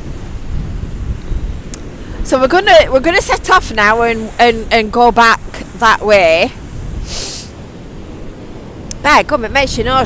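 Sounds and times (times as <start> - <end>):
sea washing: 0.0 - 10.0
wind buffeting microphone: 0.0 - 10.0
person sniffing: 7.0 - 7.6.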